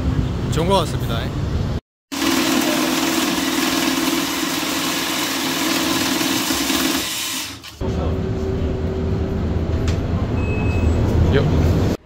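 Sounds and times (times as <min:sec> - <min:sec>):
banknote counting machine running: 0:02.1 - 0:07.7.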